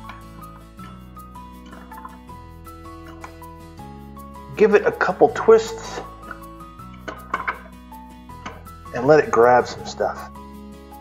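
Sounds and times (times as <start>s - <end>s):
drain snake scraping and clicking: 0.0s - 3.5s, 5.4s - 8.7s
background music: 0.0s - 11.0s.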